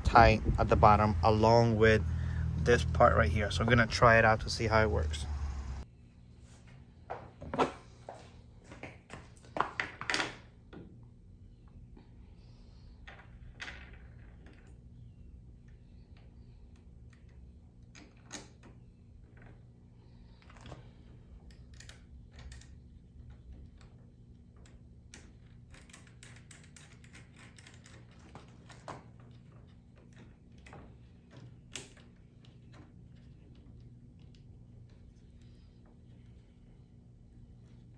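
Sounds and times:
steady low hum: 0:00.0 - 0:09.5, 0:10.4 - 0:37.9.

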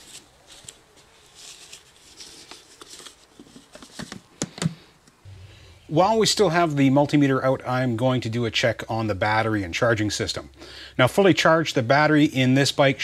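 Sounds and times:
gloved hands rustling and clicking: 0:00.0 - 0:05.2
low steady hum: 0:00.0 - 0:13.0.

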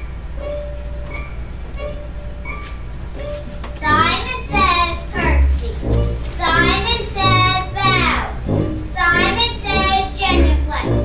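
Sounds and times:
musical accompaniment with bass line: 0:00.0 - 0:11.0.

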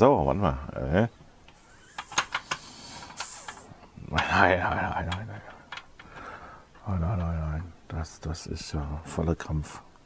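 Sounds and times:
short hiss: 0:01.5 - 0:03.8.

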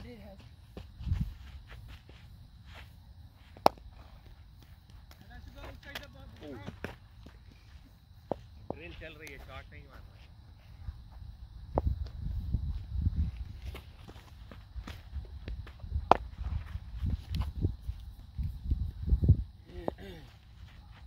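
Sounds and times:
footsteps: 0:00.0 - 0:19.2
wind rumble on microphone: 0:00.9 - 0:01.7, 0:10.7 - 0:19.8.

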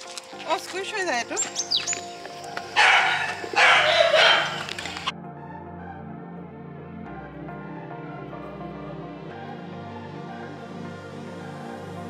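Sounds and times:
background music: 0:00.0 - 0:12.0
bicycle pump hissing: 0:01.4 - 0:05.1.

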